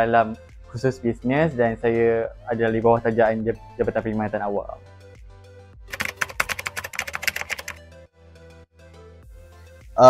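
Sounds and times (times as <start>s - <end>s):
soft background music: 0.0s - 10.0s
keyboard typing clicks: 5.9s - 7.8s.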